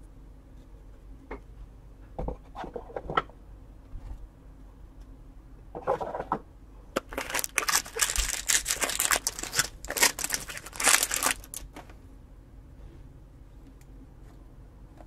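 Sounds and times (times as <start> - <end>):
foil wrapper crinkling and tearing: 7.0 - 11.8.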